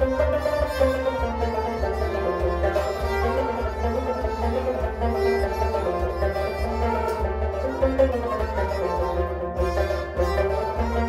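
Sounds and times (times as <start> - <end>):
bowed string instrument: 0.0 - 11.0
harmonium: 0.0 - 11.0
plucked long-necked sitar: 0.0 - 11.0.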